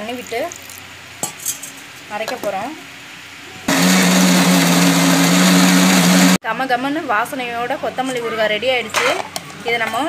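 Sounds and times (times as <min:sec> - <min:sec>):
mixer grinder whirring: 0:03.7 - 0:06.4.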